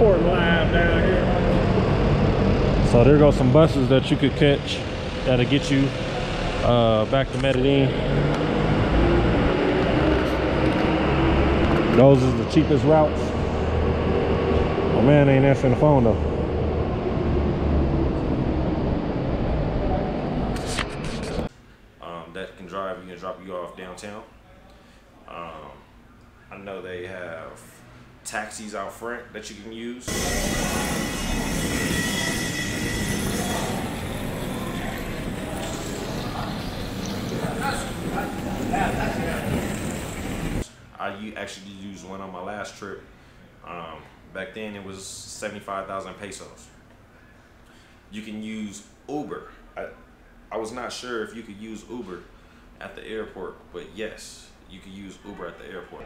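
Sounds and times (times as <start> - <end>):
faint high whine: 0.0 - 8.4, 9.0 - 56.0
minibus engine running: 0.0 - 20.9, 33.3 - 40.6
traffic noise: 0.0 - 21.7, 30.1 - 41.0
crowd noise: 30.1 - 40.6.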